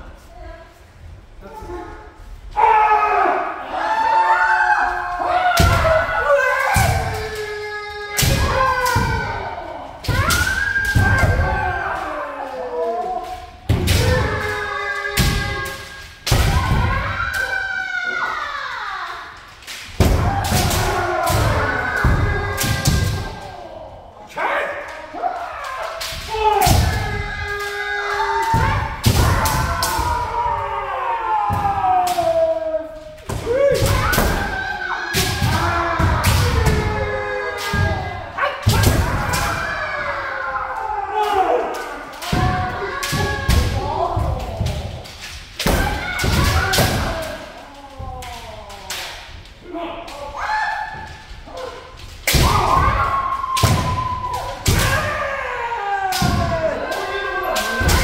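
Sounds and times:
players shouting: 2.5s - 58.0s.

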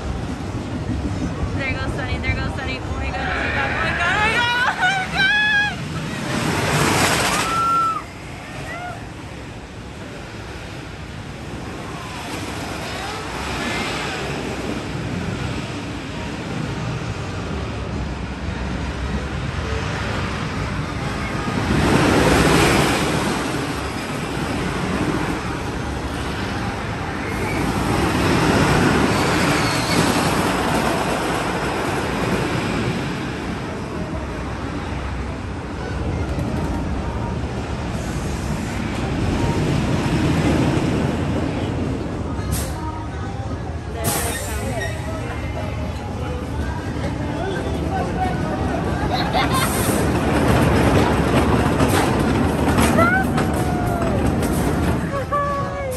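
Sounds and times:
roller coaster rumbling on track: 0.0s - 55.9s.

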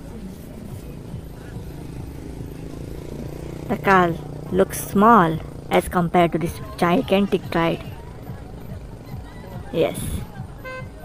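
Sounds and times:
faint music: 0.0s - 11.0s
low rumble of vehicles: 0.0s - 11.0s.

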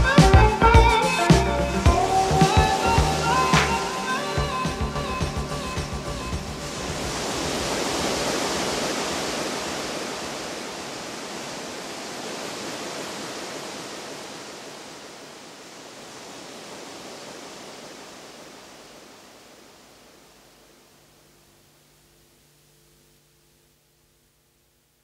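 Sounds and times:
rushing wash of noise: 1.0s - 21.0s.

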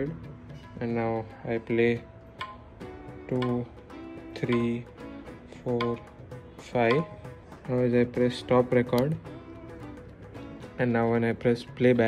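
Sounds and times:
electronic tabla strokes: 0.0s - 12.0s.

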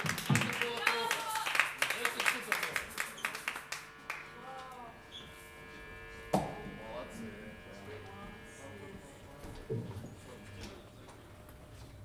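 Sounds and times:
audience applause: 0.0s - 4.3s.

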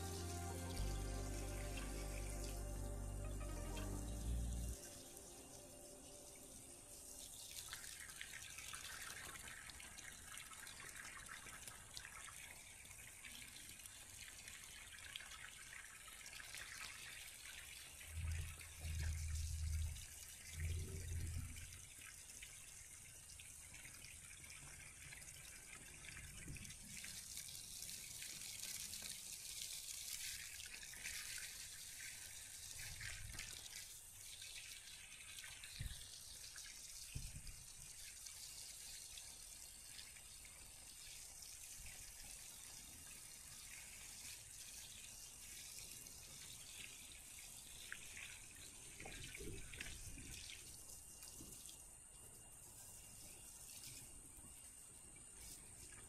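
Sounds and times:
hose water spraying on grass: 0.0s - 56.0s.

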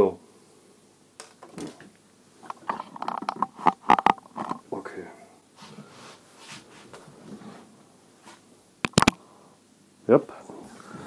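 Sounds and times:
sharp clicks: 8.9s - 9.2s.

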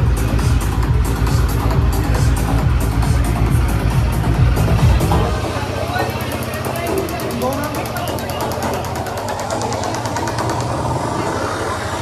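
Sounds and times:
crowd chatter: 0.0s - 12.0s
motorcycle engine idling: 0.0s - 12.0s.

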